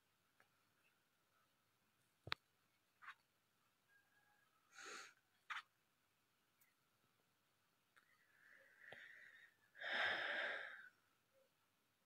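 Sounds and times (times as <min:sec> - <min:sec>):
person breathing out heavily: 0:08.4 - 0:11.0.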